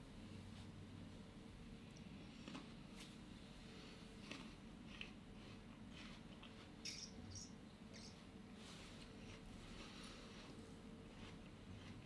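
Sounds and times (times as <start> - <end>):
faint steady hum: 0.0 - 12.0
faint high chirps: 6.8 - 8.2.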